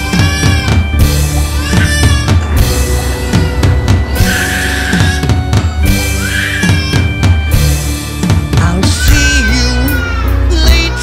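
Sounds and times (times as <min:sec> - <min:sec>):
high squeals: 0:00.0 - 0:07.4
bass and guitar: 0:00.0 - 0:11.0
rock drum beat: 0:00.0 - 0:11.0.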